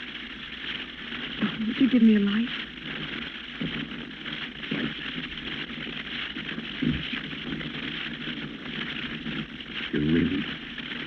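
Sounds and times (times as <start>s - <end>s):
recording hiss: 0.0s - 11.0s.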